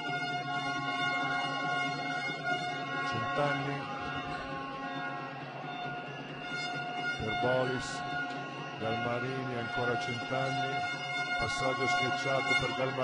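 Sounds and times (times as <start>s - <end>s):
crowd voices: 0.0s - 13.0s
music with sustained tones: 0.0s - 13.0s.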